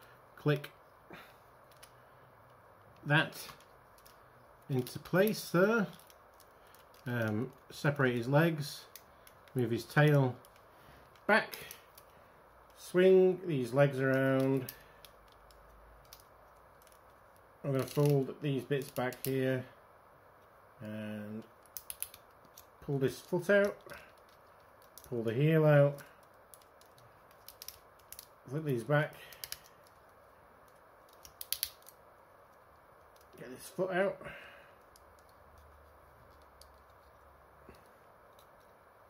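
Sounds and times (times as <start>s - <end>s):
plastic toy parts clicking: 1.6s - 7.6s, 8.8s - 12.1s, 14.0s - 18.2s, 18.8s - 19.4s, 21.4s - 25.2s, 25.9s - 28.4s, 29.3s - 33.4s, 34.8s - 37.3s
plastic toy joints clicking: 26.2s - 28.3s.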